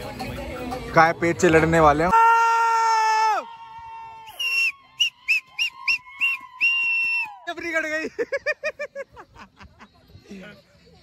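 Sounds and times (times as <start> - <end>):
short high whistles: 4.3 - 7.4.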